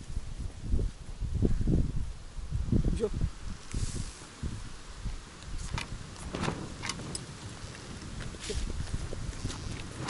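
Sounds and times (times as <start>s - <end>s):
wind rumbling on microphone: 0.0s - 10.0s
camp gear clicking and knocking: 5.7s - 7.8s.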